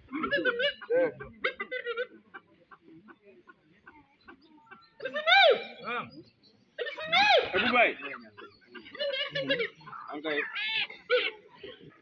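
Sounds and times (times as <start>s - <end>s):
chicken clucking: 0.0s - 5.8s, 6.8s - 12.0s
faint distant voices: 0.0s - 12.0s.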